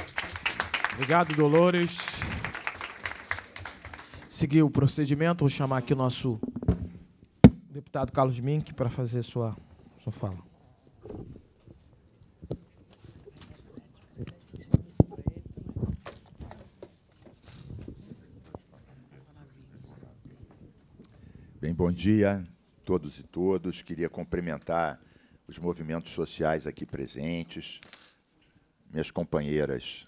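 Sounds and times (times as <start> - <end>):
audience applauding: 0.0 - 4.4
microphone handling knocks: 6.4 - 7.7.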